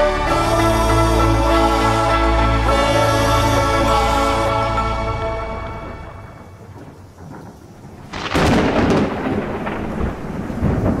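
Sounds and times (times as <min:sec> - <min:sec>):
thunder crash and rumble: 0:06.4 - 0:11.0.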